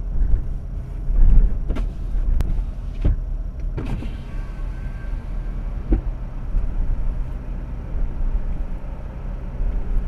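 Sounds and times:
road and engine rumble: 0.0s - 10.0s.

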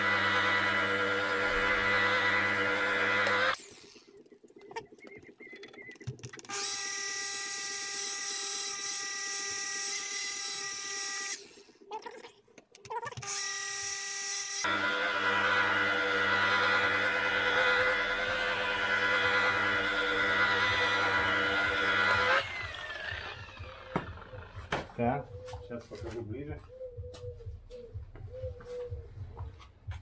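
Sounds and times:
rotary polisher motor whine: 0.0s - 3.6s, 6.5s - 11.4s, 13.2s - 25.0s.

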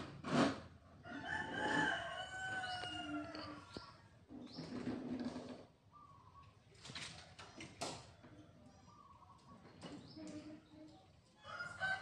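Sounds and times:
rooster crowing: 1.0s - 3.7s, 11.4s - 12.0s.

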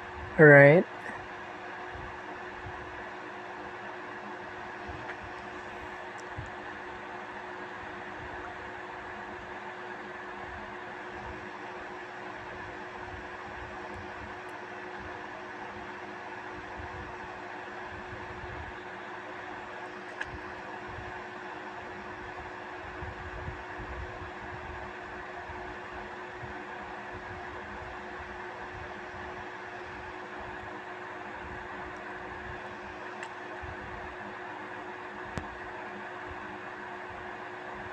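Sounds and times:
faint steady hum: 0.0s - 37.9s.

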